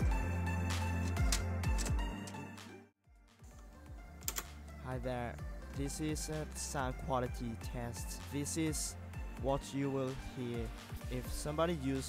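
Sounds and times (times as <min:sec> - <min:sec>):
faint background music: 0:03.1 - 0:12.0
man's voice: 0:04.8 - 0:12.0.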